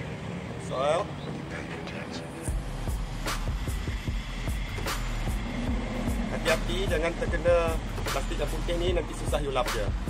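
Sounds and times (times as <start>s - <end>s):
background music with low beat: 1.4s - 10.0s
steady low hum: 2.5s - 10.0s.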